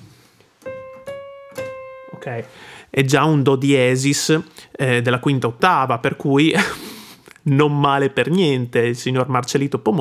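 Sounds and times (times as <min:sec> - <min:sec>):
electronic keyboard notes: 0:00.6 - 0:02.8.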